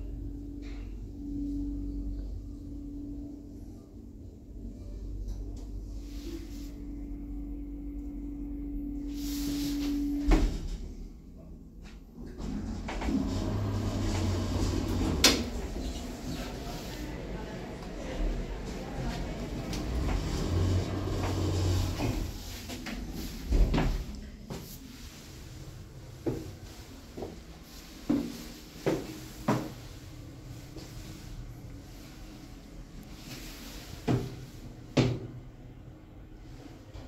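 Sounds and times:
elevator doors sliding shut: 0:12.3 - 0:24.1.

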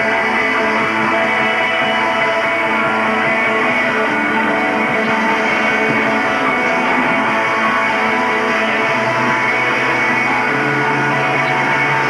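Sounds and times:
electric guitars: 0:00.0 - 0:12.0
live rock band playing: 0:00.0 - 0:12.0.

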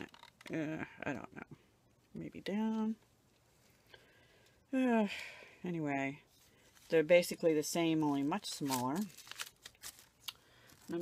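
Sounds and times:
plastic bags clicking and crinkling: 0:08.1 - 0:11.0.

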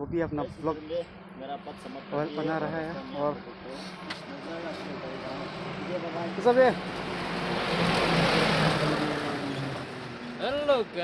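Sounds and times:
motor vehicle passing: 0:00.4 - 0:11.0.

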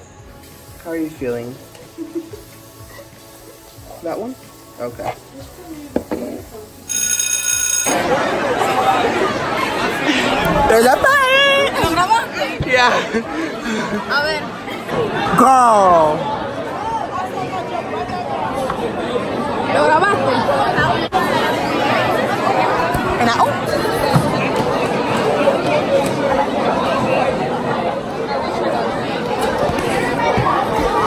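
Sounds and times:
voices chattering in a large room: 0:00.0 - 0:31.0
high-pitched electronic ringing tone: 0:06.9 - 0:08.0.

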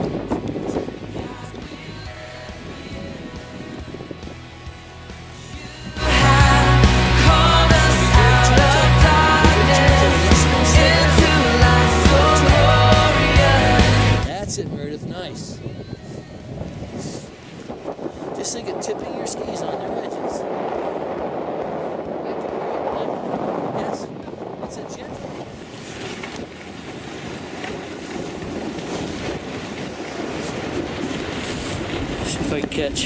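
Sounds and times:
wind buffeting microphone: 0:00.0 - 0:33.0
skis scraping on snow: 0:25.0 - 0:33.0.

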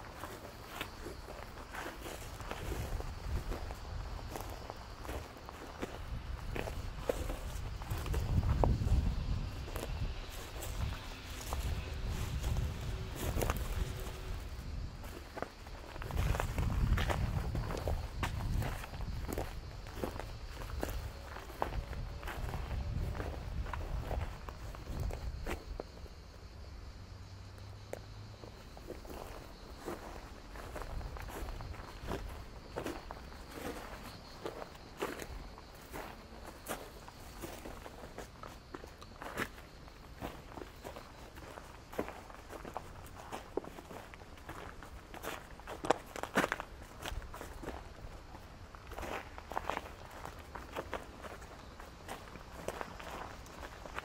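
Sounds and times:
footsteps on stony ground: 0:00.0 - 0:26.3, 0:28.6 - 0:54.0.

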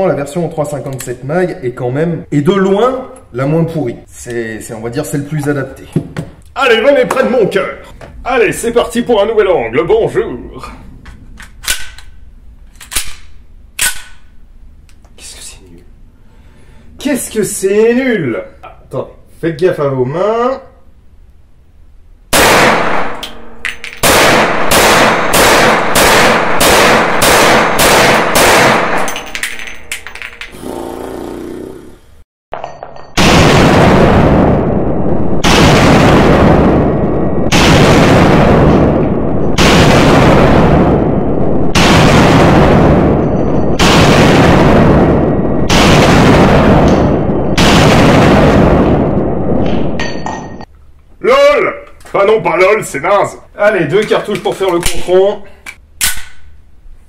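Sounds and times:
pistol shots echoing indoors: 0:12.9 - 0:14.4, 0:22.3 - 0:29.4, 0:43.8 - 0:49.6.

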